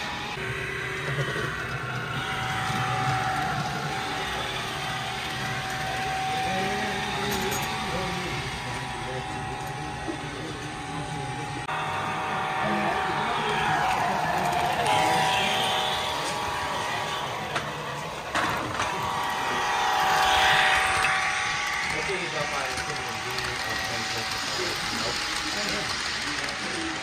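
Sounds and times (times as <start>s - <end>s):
indistinct voices: 0.0s - 27.0s
model train whine: 0.0s - 27.0s.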